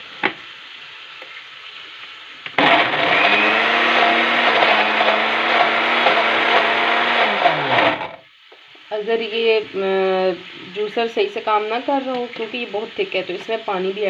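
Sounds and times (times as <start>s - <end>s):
electric blender grinding: 2.5s - 8.2s.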